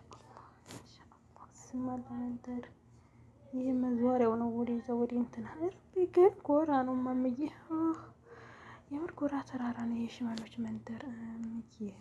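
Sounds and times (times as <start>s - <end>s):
woman speaking: 0.9s - 2.8s, 3.4s - 8.2s, 8.9s - 12.0s.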